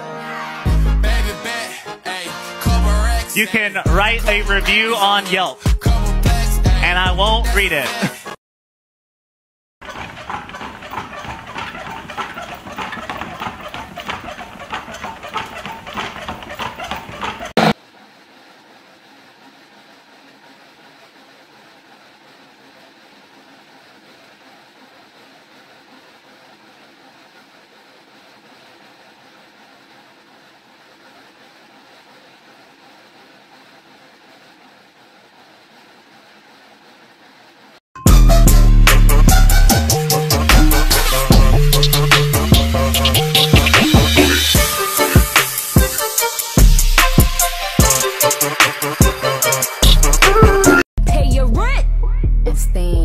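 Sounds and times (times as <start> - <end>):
loud rapid clatter: 9.8 - 17.8
dog treadmill rolling rumble: 9.8 - 37.8.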